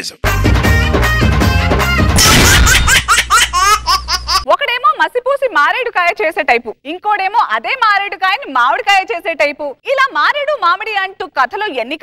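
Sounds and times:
cartoonish laughter: 0:02.2 - 0:04.5
woman speaking: 0:04.4 - 0:12.0.

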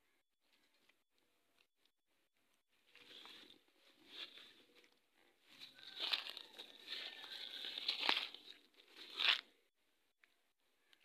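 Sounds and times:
plastic wrapper crinkling: 0:05.8 - 0:09.5.

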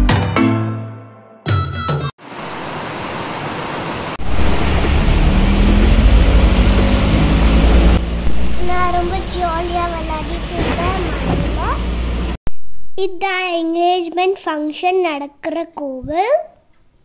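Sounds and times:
steady rain falling: 0:02.2 - 0:12.4
deep rumble: 0:04.2 - 0:13.0.

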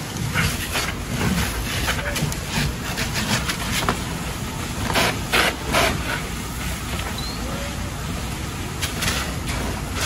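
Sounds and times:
fire engine pump running: 0:00.0 - 0:10.0
hose spraying water: 0:00.0 - 0:10.0.

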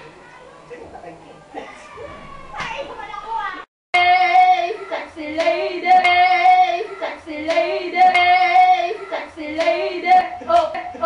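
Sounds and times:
voices singing a chant: 0:04.0 - 0:11.0.

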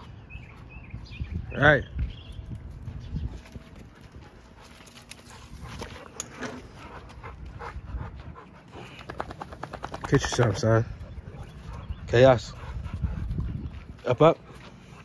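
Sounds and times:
dogs scuffing on dirt: 0:00.0 - 0:15.0
rapid clicks of dog claws: 0:09.0 - 0:10.4.

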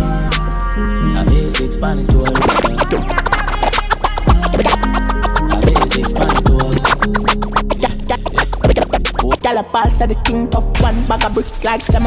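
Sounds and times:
bass-heavy dancehall beat: 0:00.0 - 0:12.0
vocal lines: 0:00.0 - 0:12.0
record scratching: 0:02.1 - 0:09.6.

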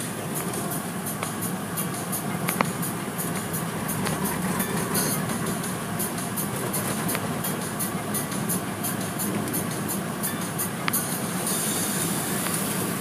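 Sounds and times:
car wash brushes rumbling: 0:00.0 - 0:13.0
water spray on car: 0:11.1 - 0:13.0.

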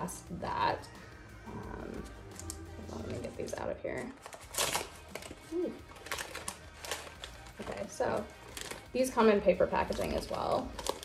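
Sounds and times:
paper packaging rustling: 0:02.0 - 0:09.0, 0:09.8 - 0:11.0.

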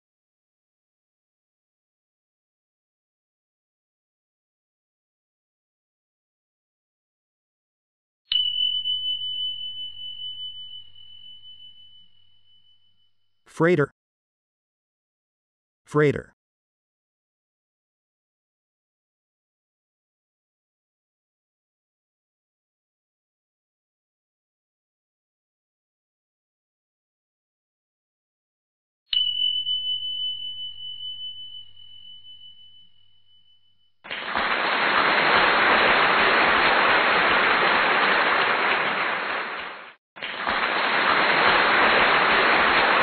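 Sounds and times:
bell-like chime: 0:08.3 - 0:13.4, 0:29.1 - 0:38.3.

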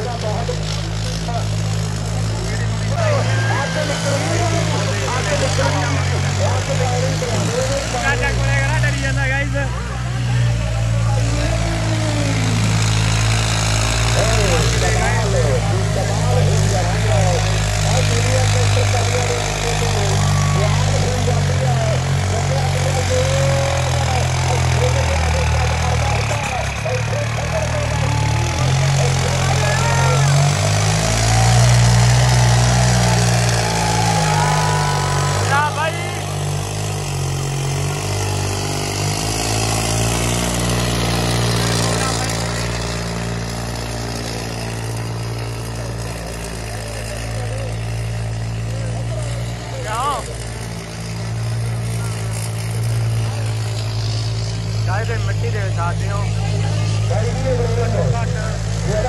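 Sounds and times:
crowd voices: 0:00.0 - 0:59.0
tractor engine under load: 0:00.0 - 0:59.0.

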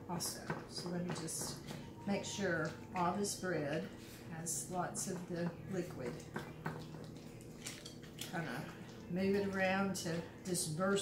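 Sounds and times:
whisk squishing wet bread: 0:03.6 - 0:11.0.

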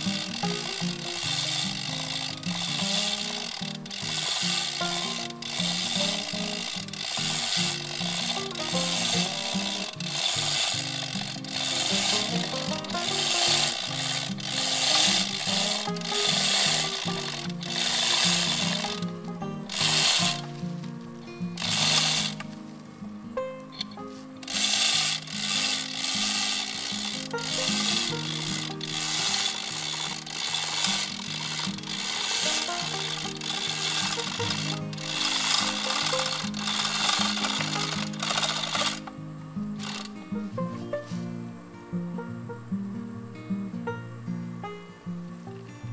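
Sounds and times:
chain hoist ratcheting clicks: 0:00.0 - 0:20.6, 0:21.6 - 0:22.5, 0:23.8 - 0:39.2, 0:39.8 - 0:40.2
background music: 0:00.0 - 0:45.9.

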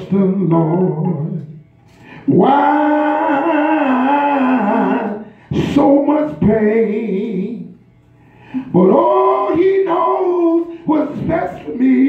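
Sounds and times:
man singing gospel into microphone: 0:00.0 - 0:01.6, 0:02.2 - 0:07.7, 0:08.6 - 0:12.0.

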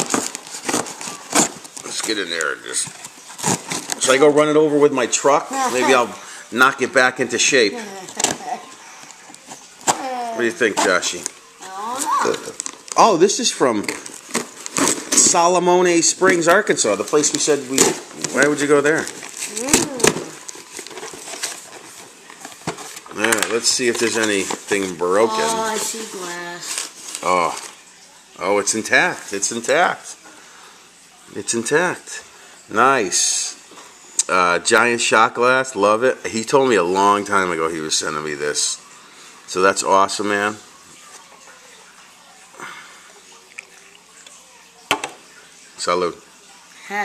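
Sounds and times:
cardboard box crackling: 0:00.0 - 0:04.2, 0:17.8 - 0:27.8.

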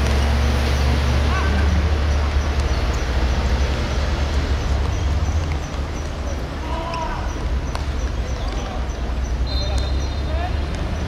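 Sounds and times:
distant players shouting: 0:01.1 - 0:02.8, 0:04.7 - 0:11.0.

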